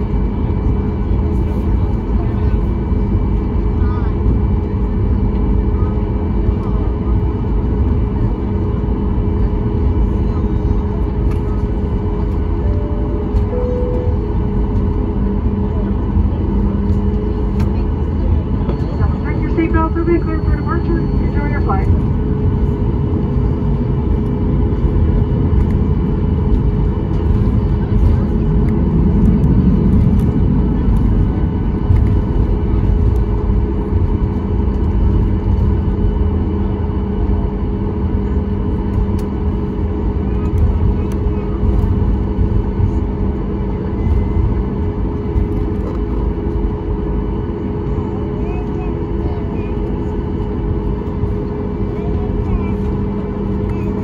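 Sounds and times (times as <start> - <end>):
airplane engines rumbling: 0.0 - 54.0
steady hums: 0.0 - 54.0
voices in cabin: 0.0 - 54.0.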